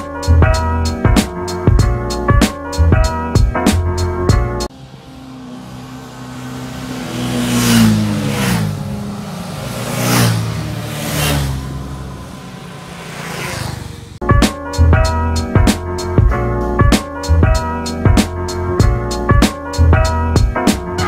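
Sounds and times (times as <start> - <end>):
motorcycles passing at speed: 4.7 - 14.2.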